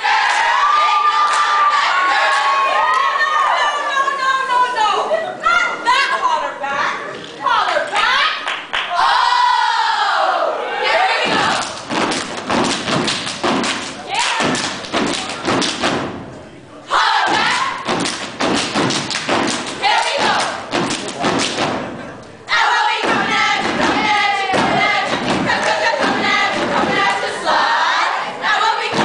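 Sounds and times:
rhythmic stomping and clapping: 0.0 - 1.6, 11.1 - 16.4, 17.0 - 29.0.

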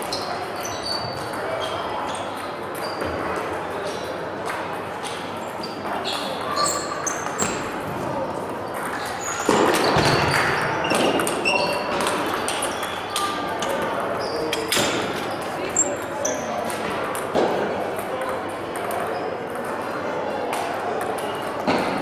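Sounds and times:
table tennis balls ticking: 8.4 - 21.6.

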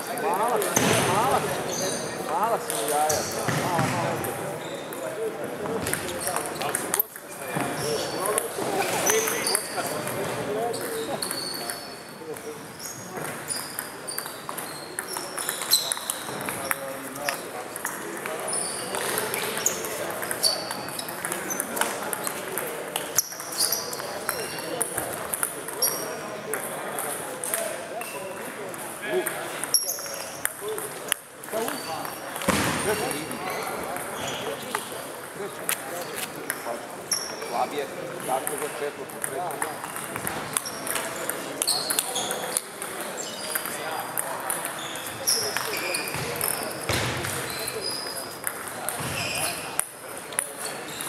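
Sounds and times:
voices in a large hall: 0.0 - 51.0.

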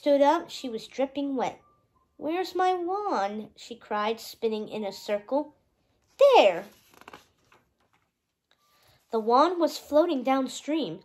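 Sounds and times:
book page handling clicks: 6.7 - 8.0.

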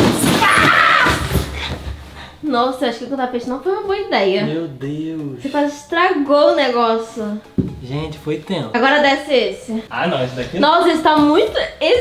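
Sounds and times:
knocks landing on mattress: 0.0 - 2.1.

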